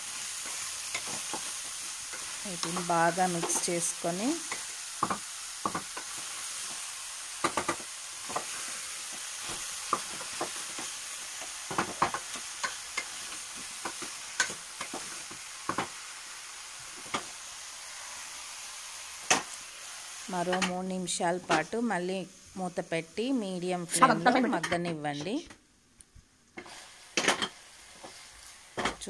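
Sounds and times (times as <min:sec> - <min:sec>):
vegetables sizzling in oil: 0:00.0 - 0:29.0.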